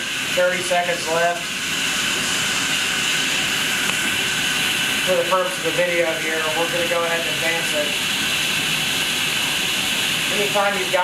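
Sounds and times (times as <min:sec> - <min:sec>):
water rushing through valve: 0:00.0 - 0:11.0.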